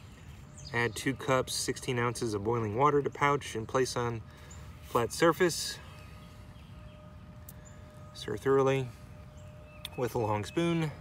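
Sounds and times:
distant bird chirps: 0.0s - 11.0s
faint steady hum: 0.0s - 11.0s.

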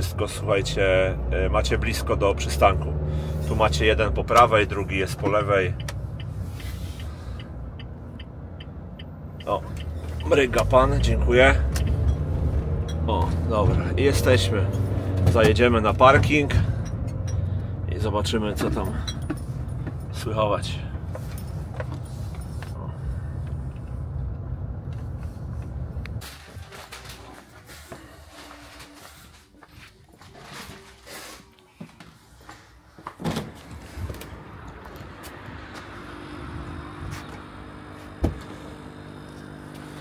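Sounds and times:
car engine and road rumble: 0.0s - 40.0s.

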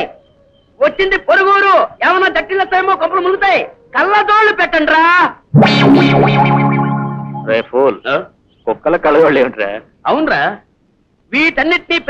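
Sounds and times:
distorted electric guitar chord: 5.6s - 7.6s.

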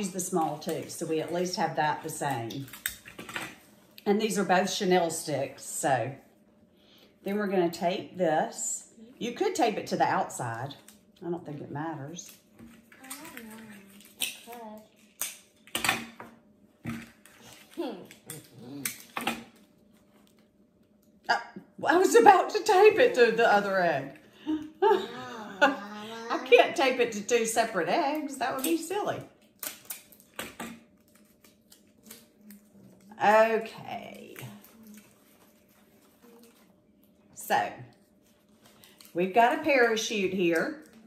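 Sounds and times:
clicks and rustles of handling plastic: 12.2s - 16.0s.

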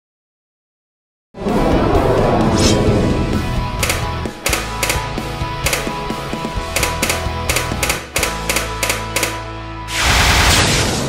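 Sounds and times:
background music with bass: 1.4s - 10.1s
sharp clicks: 3.8s - 9.4s.

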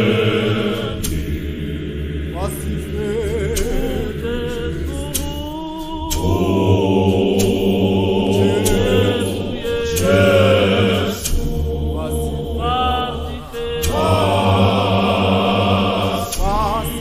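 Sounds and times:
choir singing gospel: 0.0s - 17.0s
sharp percussive hits: 0.0s - 17.0s.

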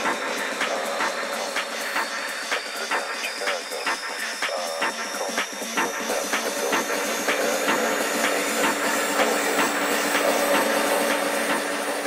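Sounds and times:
percussion ticks: 0.0s - 11.6s
high rising synth tone: 0.0s - 12.0s.

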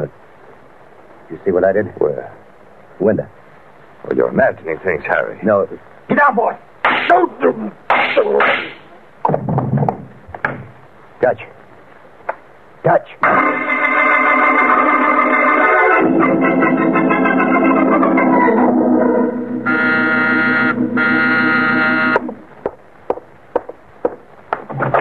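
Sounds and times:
organ chords: 13.2s - 22.7s.

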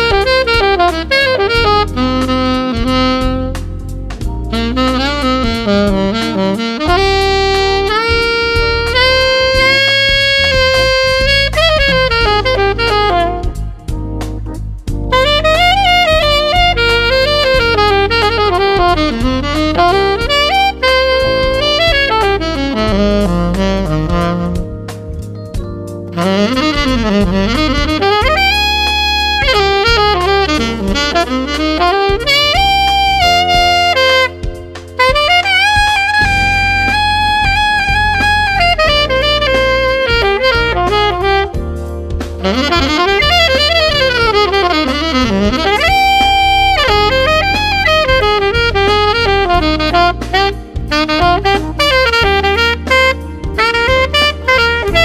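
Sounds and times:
alto saxophone melody: 0.0s - 55.0s
backing track with bass line: 0.0s - 55.0s.

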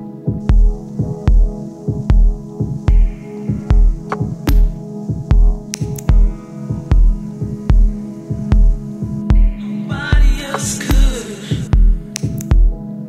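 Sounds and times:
low drone: 0.0s - 13.0s
deep kick drum: 0.3s - 9.6s, 10.2s - 12.8s
sharp electronic clicks: 4.0s - 4.8s, 5.6s - 6.4s.

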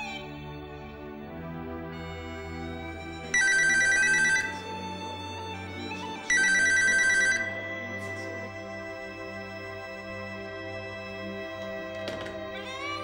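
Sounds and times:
soft background music: 0.0s - 13.0s
telephone electronic ring: 3.3s - 4.6s, 6.3s - 7.7s.

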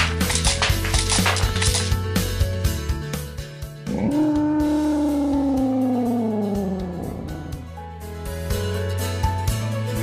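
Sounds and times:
background music: 0.0s - 10.0s
dinosaur roar: 3.8s - 7.7s.

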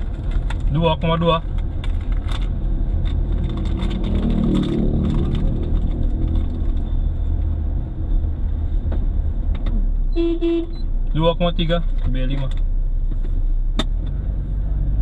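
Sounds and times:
engine and tyre rumble: 0.0s - 15.0s
clicks and rattles: 1.4s - 6.9s.

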